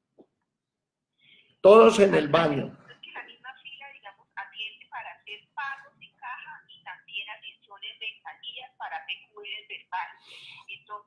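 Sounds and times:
person talking over phone: 0:01.7 - 0:11.0.

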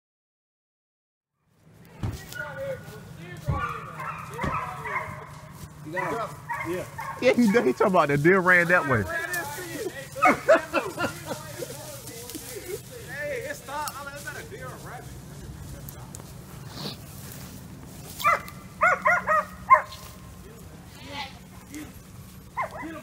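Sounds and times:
dogs barking: 0:02.3 - 0:11.7, 0:18.0 - 0:20.4, 0:22.2 - 0:23.0.

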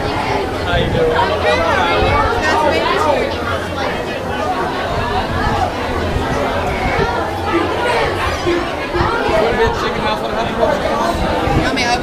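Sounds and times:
babble of voices: 0:00.0 - 0:12.0.

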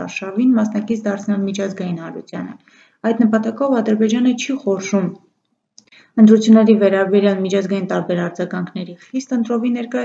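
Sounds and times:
woman speaking: 0:00.0 - 0:05.2, 0:05.8 - 0:10.0.

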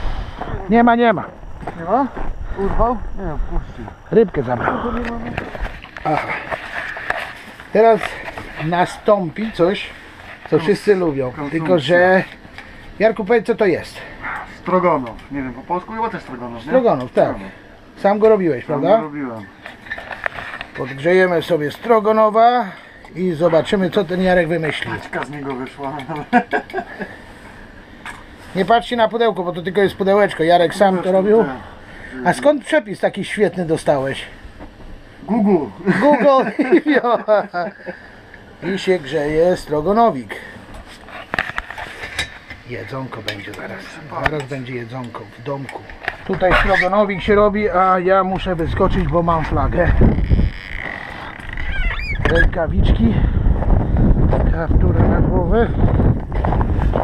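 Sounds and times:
gas burner hissing: 0:00.0 - 0:05.5
wind buffeting microphone: 0:00.0 - 0:06.0, 0:46.5 - 0:50.7, 0:51.5 - 0:57.0
door creaking open: 0:49.9 - 0:52.6.

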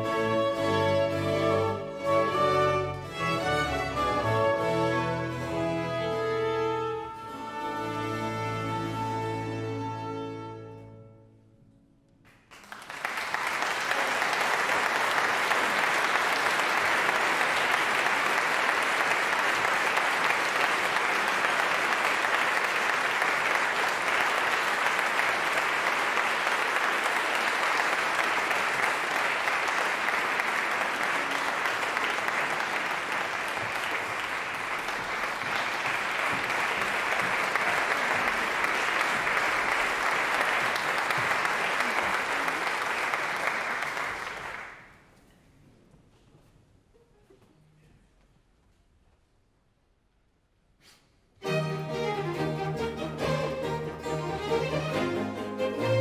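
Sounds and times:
audience applauding: 0:12.3 - 0:45.1.

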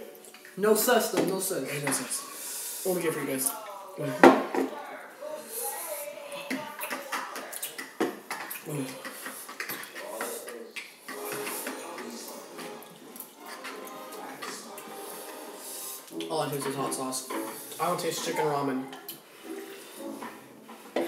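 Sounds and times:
young voices mumbling: 0:03.3 - 0:15.6.

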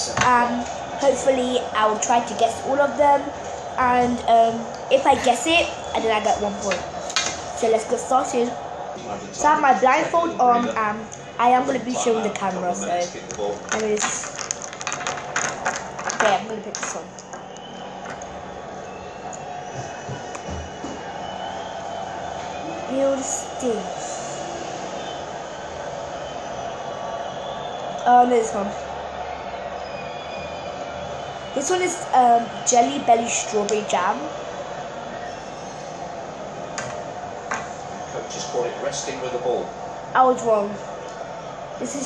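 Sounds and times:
stadium crowd noise: 0:00.0 - 0:42.0.

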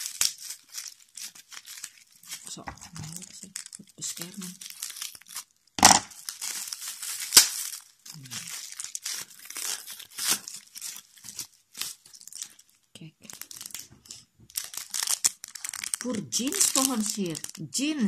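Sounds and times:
bubble wrap crinkling and tearing: 0:00.0 - 0:18.0.

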